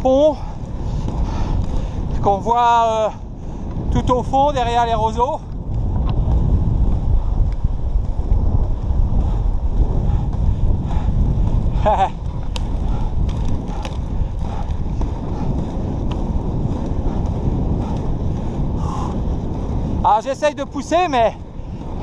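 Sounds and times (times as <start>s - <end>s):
inline skate wheels on asphalt: 0.0s - 22.0s
wind buffeting microphone: 0.0s - 22.0s.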